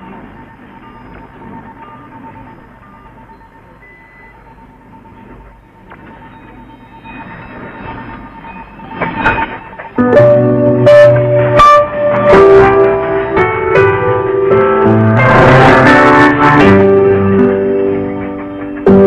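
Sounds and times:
instrumental music with piano chords: 9.4 - 19.0.

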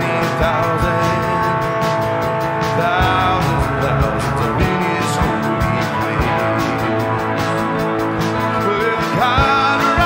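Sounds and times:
drums and cymbals: 0.0 - 10.0.

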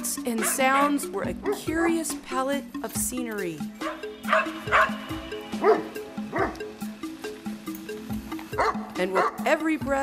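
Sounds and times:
background music: 0.0 - 10.0
dog barking and yipping: 0.3 - 2.1, 3.8 - 6.7, 8.5 - 9.5.

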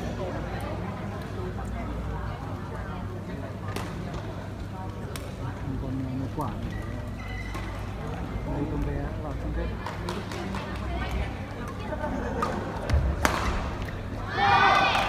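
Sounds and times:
murmur of spectators: 0.0 - 15.0
racket striking shuttlecock: 12.4 - 14.0
crowd shouting: 14.2 - 15.0.

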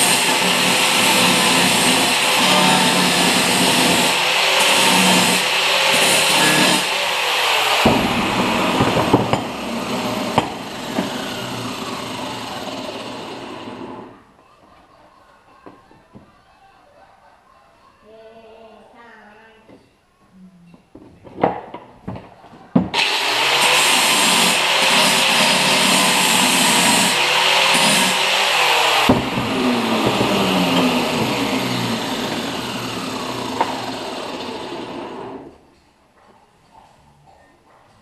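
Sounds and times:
electric power tool running: 0.0 - 14.2, 23.0 - 35.6
power tool winding down: 0.0 - 14.2, 23.0 - 35.6.

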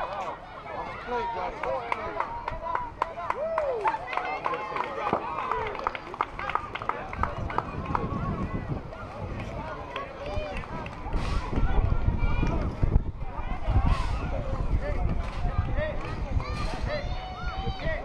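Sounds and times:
people chattering and calling out: 0.0 - 18.0.

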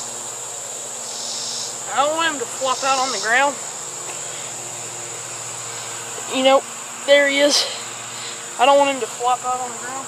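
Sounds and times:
insects chirping chorus: 0.0 - 10.0.

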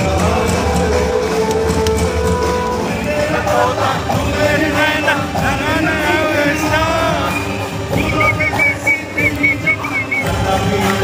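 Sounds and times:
live band music: 0.0 - 11.0
high whistled notes: 6.5 - 10.4.

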